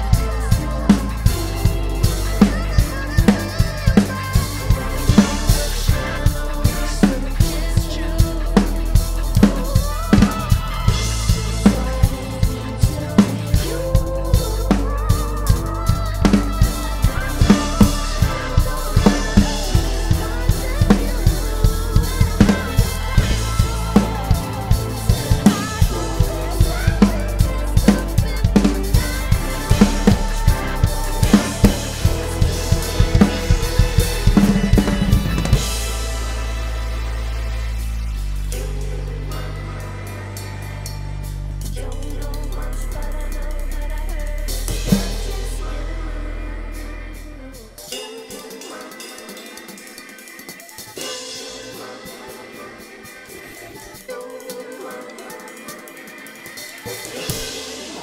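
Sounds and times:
drum kit playing groove: 0:00.0 - 0:58.0
pop backing track: 0:00.0 - 0:58.0.

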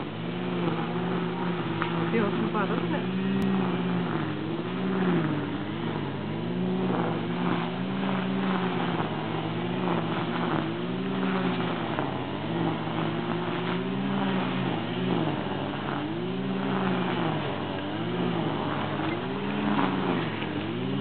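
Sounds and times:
wheelchair electric motors whining: 0:00.0 - 0:21.0.

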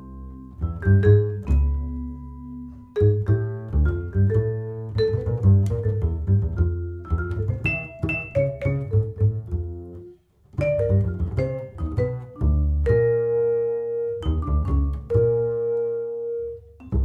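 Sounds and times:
plucked double bass: 0:00.0 - 0:17.0
vibraphone notes: 0:00.1 - 0:09.4, 0:10.6 - 0:16.0.

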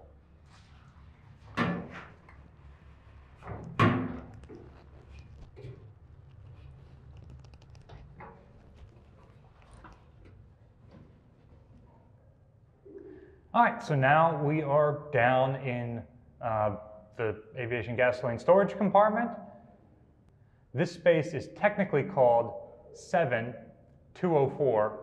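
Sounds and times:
metal clanks and scuffs: 0:01.4 - 0:02.3.

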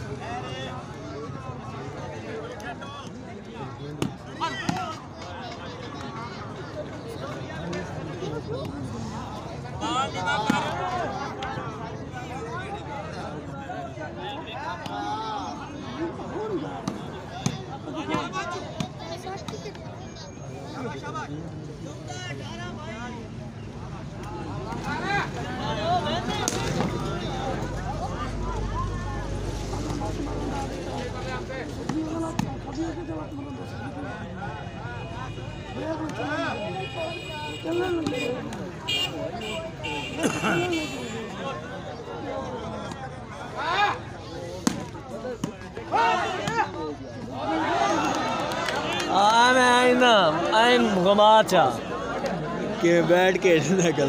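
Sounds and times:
players and crowd shouting: 0:00.0 - 0:54.0.

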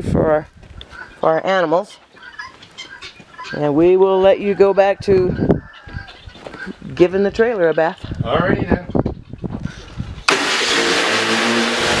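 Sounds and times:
pressure washer hissing spray: 0:10.3 - 0:12.0.

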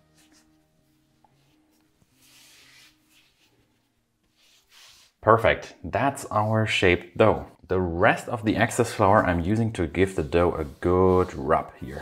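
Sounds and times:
hands rubbing dough on counter: 0:00.2 - 0:05.2, 0:08.7 - 0:12.0.

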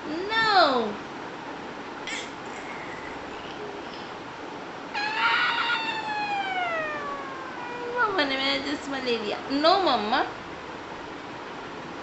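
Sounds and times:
toddler's high-pitched call: 0:05.0 - 0:08.3.

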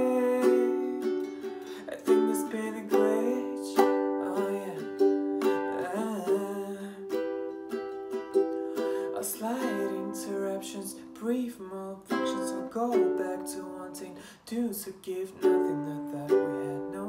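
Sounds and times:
ukulele strumming chords: 0:00.0 - 0:17.0.

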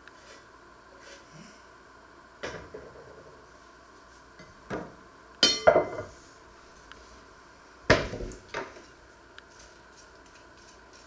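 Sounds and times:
knocks of wood and cookware: 0:04.7 - 0:06.1.

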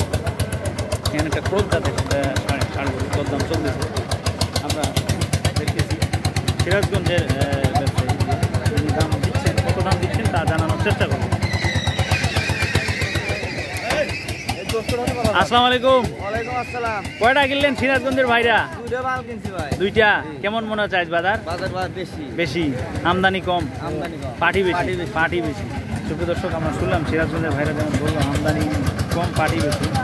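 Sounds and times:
engine idling with rapid chugging: 0:00.0 - 0:30.0
men talking: 0:00.8 - 0:30.0.

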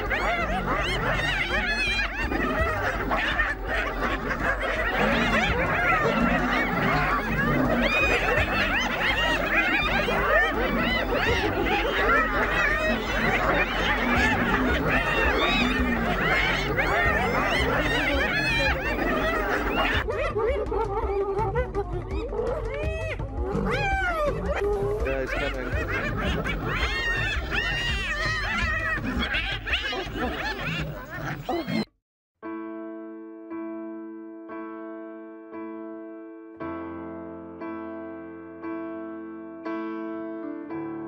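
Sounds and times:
hyenas giggling: 0:00.0 - 0:31.9.

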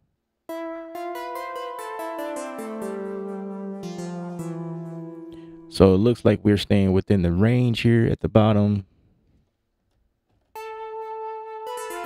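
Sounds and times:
synthesizer plucked lead notes: 0:00.5 - 0:06.4, 0:10.6 - 0:12.0.

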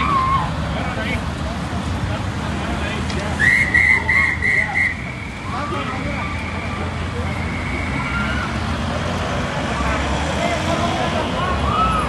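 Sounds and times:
faint indistinct voices: 0:00.0 - 0:12.0
road traffic rumble: 0:00.0 - 0:12.0.

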